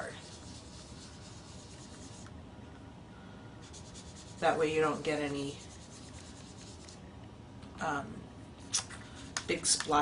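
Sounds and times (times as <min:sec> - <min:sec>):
sponge dauber rubbing on cardstock: 0:00.0 - 0:02.2, 0:03.6 - 0:07.0.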